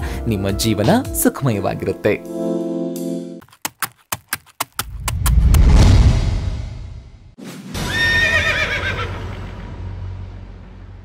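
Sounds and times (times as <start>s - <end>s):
low background music: 0.0s - 3.4s
horse whinnying: 7.9s - 9.2s.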